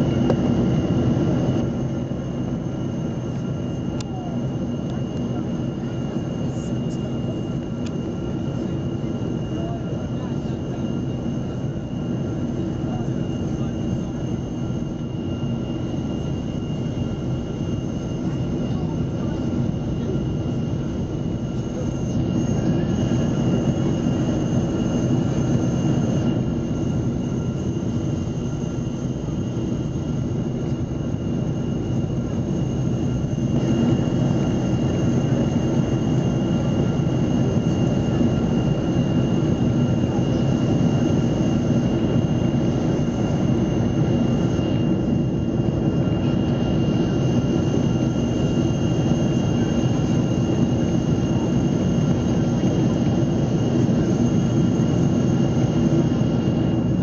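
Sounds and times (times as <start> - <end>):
airplane cabin drone: 0.0 - 57.0
jet engine high whines: 0.0 - 57.0.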